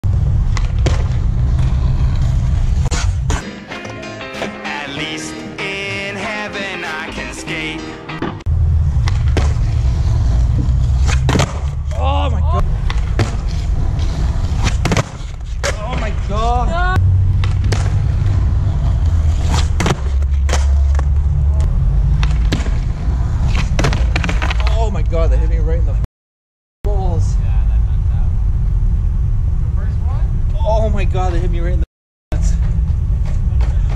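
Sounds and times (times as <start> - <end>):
skateboard wheels rolling on concrete: 0.0 - 25.2, 32.4 - 33.9
music: 3.4 - 8.4.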